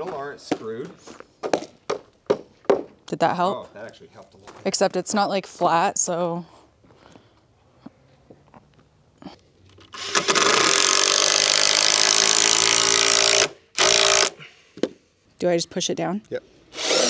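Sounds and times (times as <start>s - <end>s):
drill motor whining: 9.9s - 14.4s, 16.7s - 17.0s.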